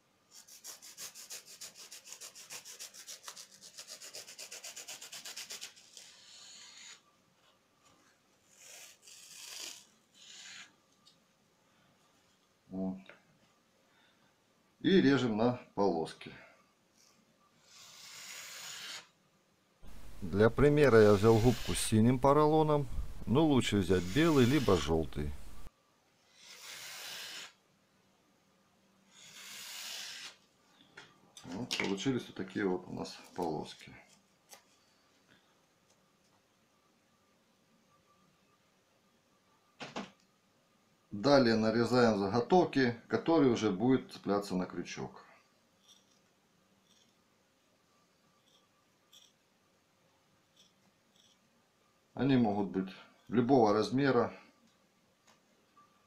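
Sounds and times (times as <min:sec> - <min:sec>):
knife sawing through sponge: 0:00.4 - 0:07.0, 0:08.5 - 0:10.7, 0:19.8 - 0:25.7
soft scraping of sponge: 0:19.8 - 0:25.7.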